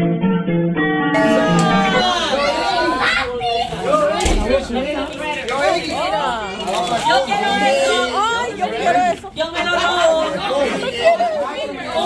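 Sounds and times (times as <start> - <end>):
crowd of excited voices chattering: 1.2 - 12.0.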